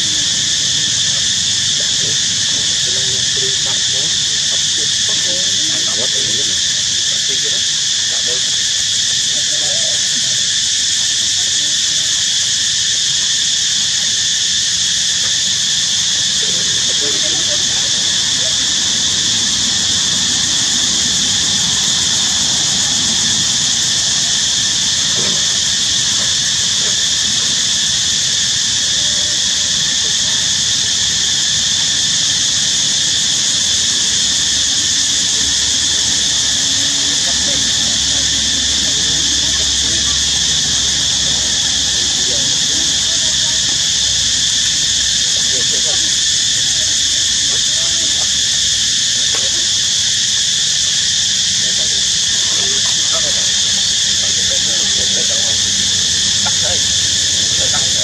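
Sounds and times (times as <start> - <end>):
insects droning: 0.0 - 58.0.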